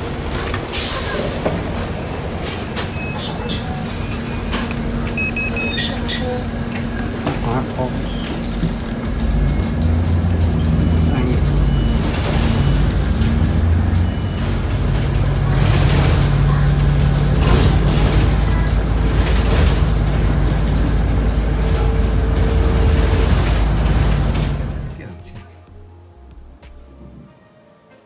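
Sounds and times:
road noise: 0.0s - 25.8s
bus engine drone: 0.0s - 27.2s.

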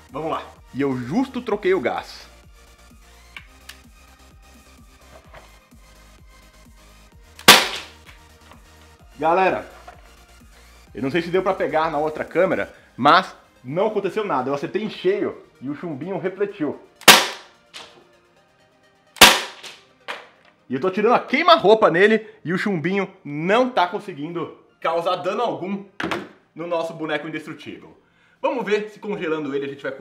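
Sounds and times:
faint background music: 0.0s - 30.0s
pellet pistol shot: 7.4s - 8.0s, 17.0s - 17.9s, 19.2s - 19.8s.

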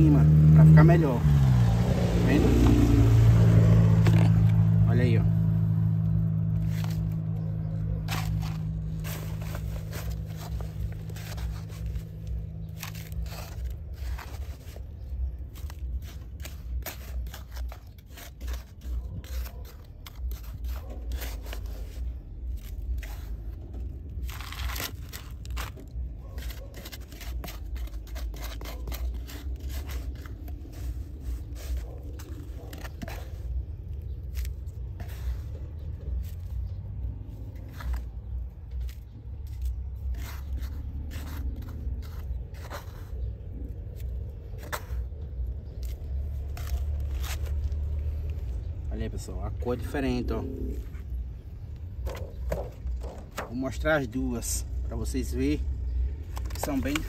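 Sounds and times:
trowel scraping sand: 0.0s - 57.0s
vehicle engine hum: 0.0s - 57.0s.

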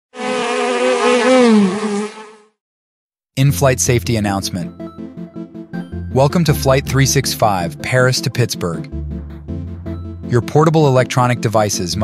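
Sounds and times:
bee buzzing: 0.1s - 2.6s.

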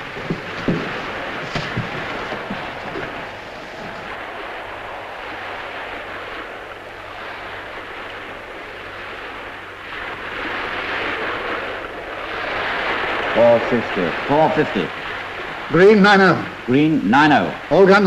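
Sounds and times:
waves on a choppy sea: 0.0s - 18.0s
wind: 0.0s - 18.0s.

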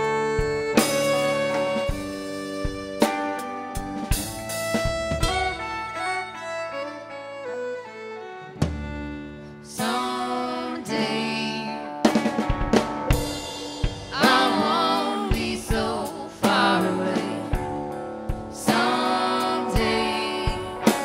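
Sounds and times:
drum kit: 0.0s - 6.4s, 8.6s - 21.0s
bowed violin: 0.0s - 12.0s
electric guitar: 0.0s - 21.0s.

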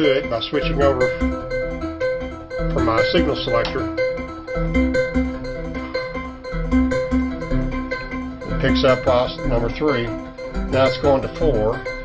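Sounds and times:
synthesizer held tone: 0.0s - 12.0s
synthesizer short notes: 0.0s - 12.0s.

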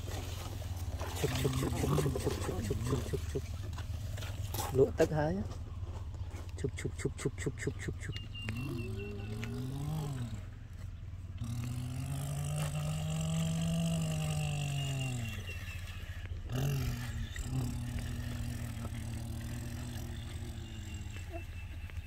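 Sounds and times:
boy imitating engine drone: 0.0s - 4.7s, 6.4s - 22.0s.

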